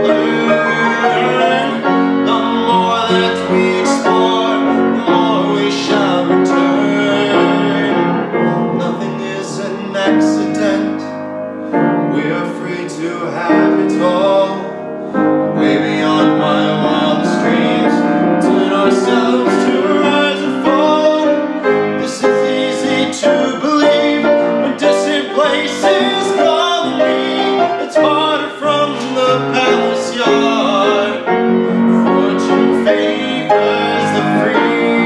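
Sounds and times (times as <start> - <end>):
man singing: 0.0 - 11.2, 12.0 - 14.8, 15.5 - 35.0
grand piano: 0.0 - 35.0.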